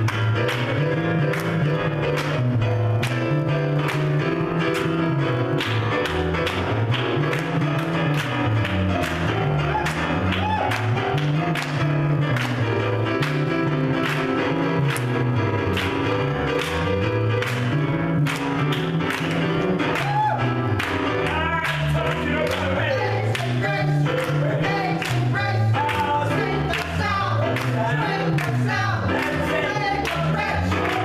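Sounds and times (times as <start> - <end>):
bass line: 0.0 - 31.0
electric keyboard: 0.0 - 31.0
hand claps: 0.0 - 31.0.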